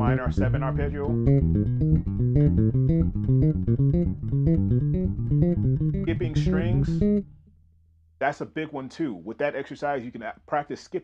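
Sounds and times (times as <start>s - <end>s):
electric bass plucked notes: 0.0s - 7.4s.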